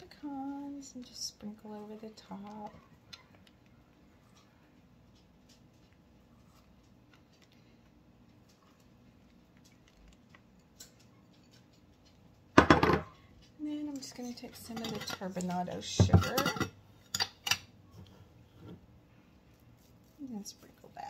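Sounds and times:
faint ticks of nuts sprinkled: 0:00.1 - 0:12.5
glass bowl knocking on countertop: 0:12.6 - 0:13.1.

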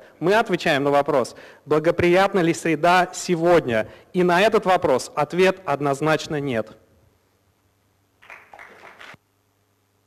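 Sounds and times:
faint audience applause: 0:08.2 - 0:09.2.

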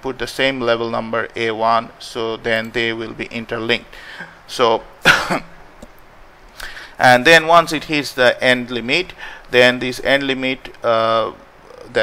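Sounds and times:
man coughing: 0:05.0 - 0:05.6.

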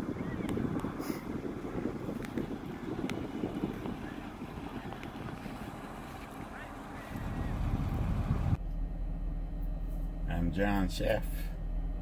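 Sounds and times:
wind buffeting microphone: 0:00.0 - 0:08.6
in-car background noise: 0:00.0 - 0:12.0.

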